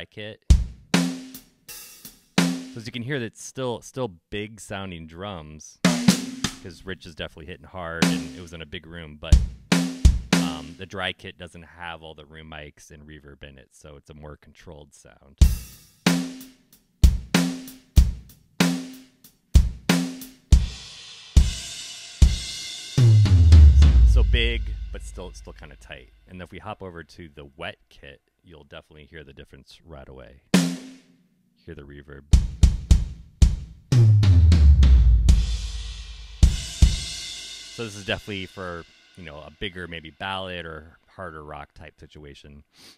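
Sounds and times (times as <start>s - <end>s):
hi-hat strikes: 0.6s - 2.9s, 5.9s - 6.8s, 15.4s - 26.2s, 34.6s - 40.0s
floor tom ringing: 23.0s - 25.8s
deep drum hits with reverb: 23.1s - 25.3s.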